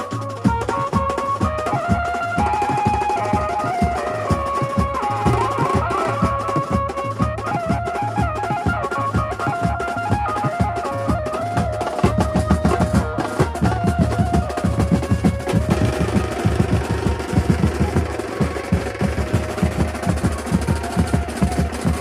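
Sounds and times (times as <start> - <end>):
amplified banjo melody: 0.0 - 19.8
fast snare and tom drumming: 0.0 - 22.0.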